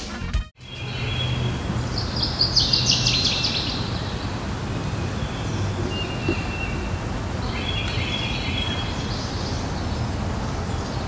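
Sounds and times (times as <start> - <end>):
bird chirping: 0.6 - 11.0
outdoor background hiss: 0.6 - 11.0.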